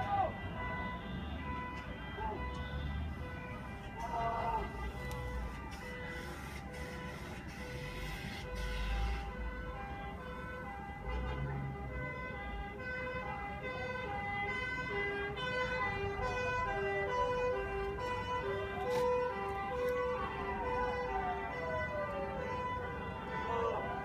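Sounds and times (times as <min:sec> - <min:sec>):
rising siren wail: 0:00.0 - 0:24.0
two-tone fire engine siren: 0:00.0 - 0:24.0.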